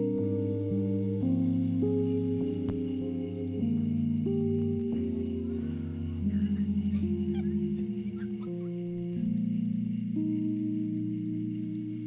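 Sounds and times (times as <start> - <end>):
slow ambient instrumental music: 0.0 - 12.0.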